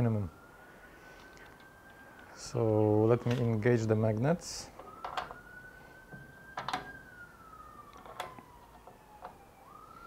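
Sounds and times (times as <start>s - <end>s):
siren wailing: 0.0s - 10.0s.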